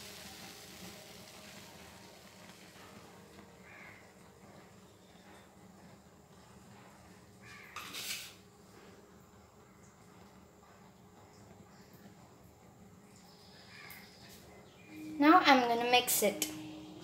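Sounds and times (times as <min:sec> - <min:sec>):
short hissing noise: 0:07.8 - 0:08.4.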